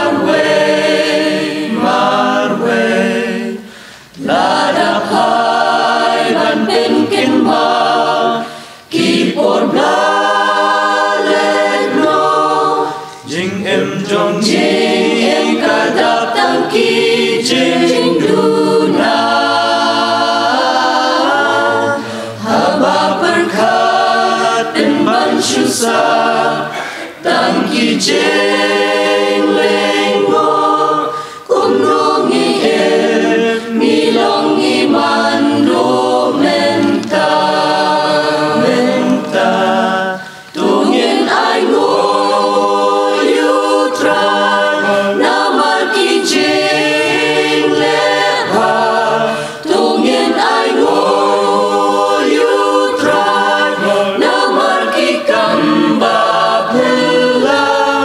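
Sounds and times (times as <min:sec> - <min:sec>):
mixed choir singing a hymn: 0:00.0 - 0:58.0.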